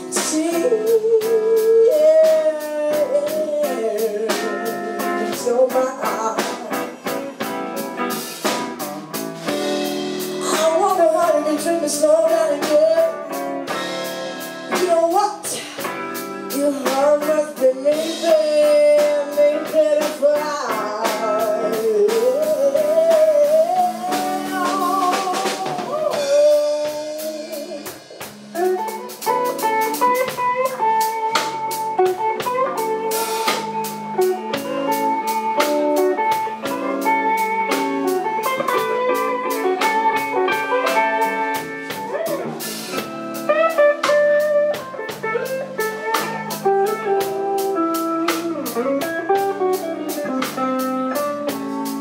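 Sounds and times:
woman singing: 0:00.0 - 0:08.2, 0:10.2 - 0:13.8, 0:14.6 - 0:42.6, 0:43.9 - 0:52.0
electric guitar: 0:00.0 - 0:52.0
live blues band: 0:00.0 - 0:52.0
steady drum beat: 0:00.0 - 0:52.0.

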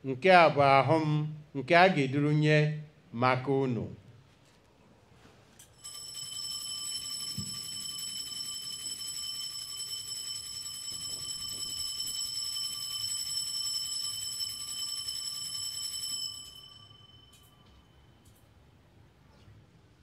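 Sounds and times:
bells ringing: 0:05.8 - 0:18.2.

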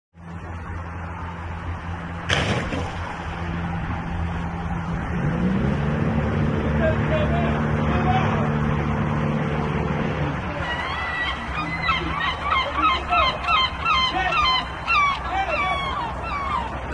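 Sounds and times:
boat motor running: 0:00.2 - 0:16.9
gull calling: 0:10.2 - 0:16.9.

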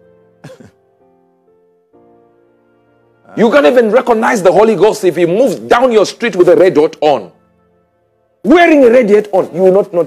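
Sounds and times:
soft sustained background music: 0:00.0 - 0:10.0
man clearing throat: 0:00.4 - 0:00.8.

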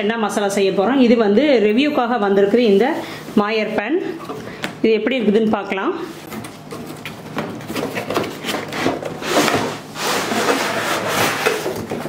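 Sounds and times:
cardboard scraping and rubbing: 0:07.6 - 0:12.0.

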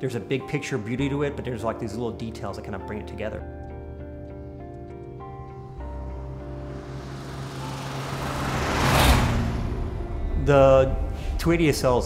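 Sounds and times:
background music: 0:00.0 - 0:12.0
car passing by: 0:05.6 - 0:12.0.

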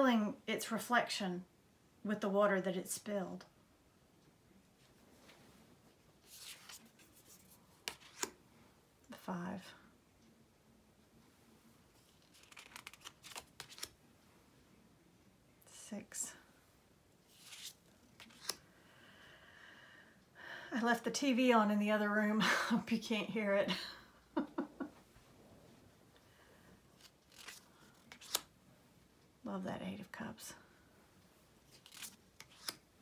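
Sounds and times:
cards sliding over one another: 0:06.2 - 0:08.4, 0:12.0 - 0:13.9, 0:17.3 - 0:18.6, 0:27.0 - 0:28.5, 0:31.7 - 0:32.8.

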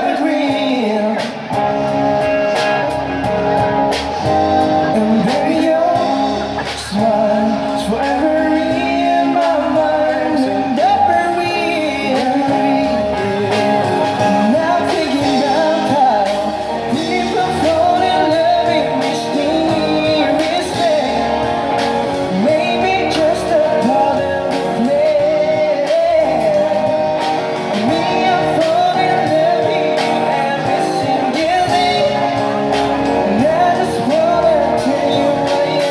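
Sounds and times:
live rock band: 0:00.0 - 0:35.9
person singing: 0:00.0 - 0:35.9.

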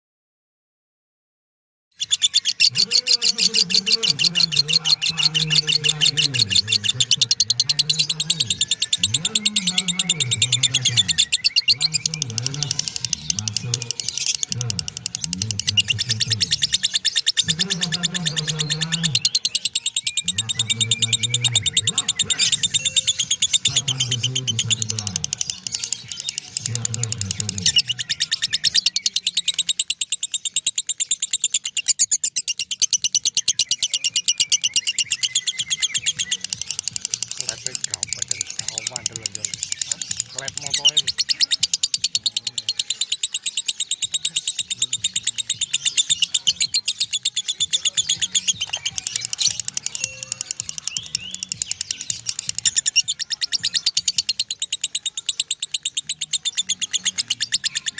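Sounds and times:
lovebird chattering trill: 0:02.0 - 0:57.9
music: 0:02.4 - 0:31.0, 0:32.7 - 0:57.9
low voice: 0:02.7 - 0:16.8, 0:17.4 - 0:19.4, 0:20.2 - 0:22.7, 0:23.6 - 0:25.5, 0:26.6 - 0:28.2.

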